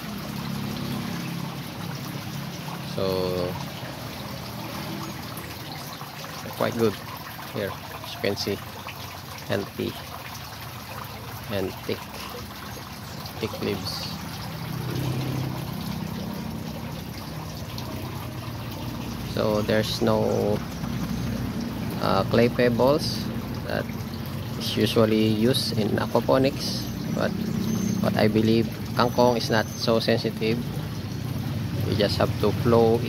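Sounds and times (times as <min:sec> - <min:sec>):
water pouring into pond: 0:00.0 - 0:33.0.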